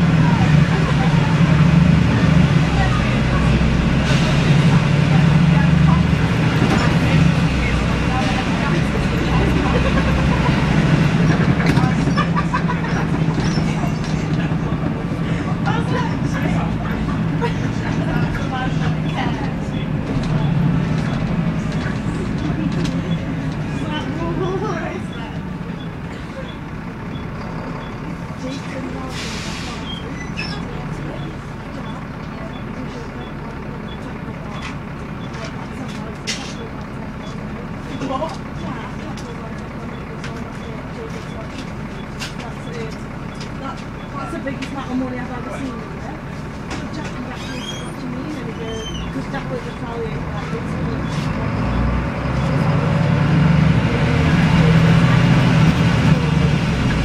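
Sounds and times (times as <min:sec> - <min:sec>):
bus diesel engine droning: 0:00.0 - 0:57.0
road rumble: 0:00.0 - 0:57.0.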